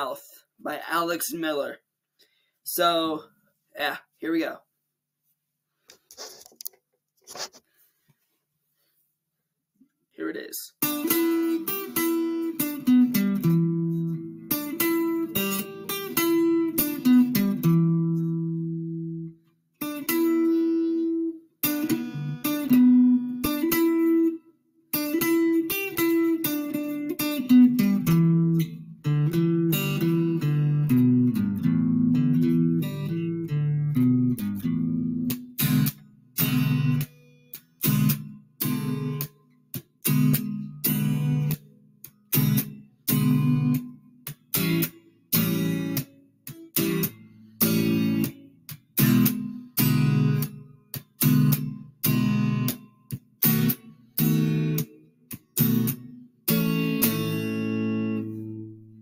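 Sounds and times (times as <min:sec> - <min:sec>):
electric guitar playing: 0:10.8 - 0:59.0.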